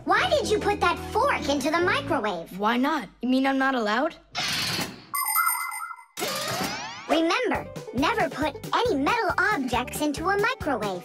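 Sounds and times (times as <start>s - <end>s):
ringing chime with warbling note: 5.2s - 6.2s.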